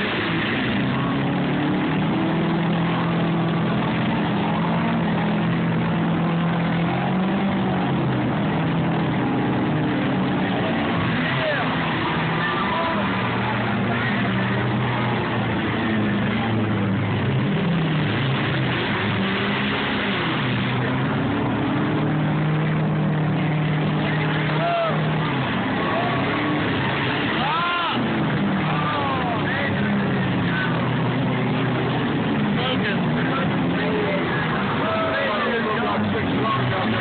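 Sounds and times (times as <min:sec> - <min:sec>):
car engines revving: 0:00.0 - 0:37.0
people shouting: 0:10.6 - 0:14.3, 0:24.4 - 0:25.2, 0:27.3 - 0:29.7.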